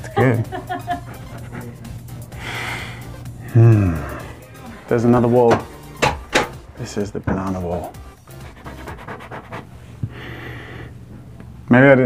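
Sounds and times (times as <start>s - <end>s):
background music: 0.0s - 9.7s
close-up sniffing: 0.8s - 4.4s, 8.2s - 11.0s
fingernails scratching wallpaper: 8.3s - 9.8s.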